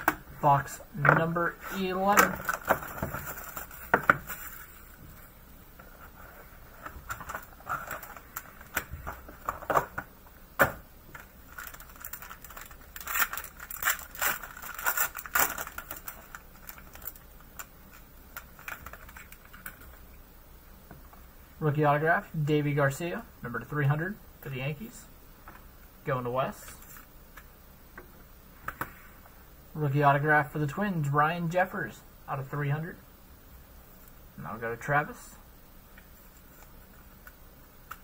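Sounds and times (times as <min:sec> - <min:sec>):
plastic wrap crinkling and tearing: 0:01.9 - 0:05.0, 0:07.0 - 0:09.9, 0:11.1 - 0:20.0.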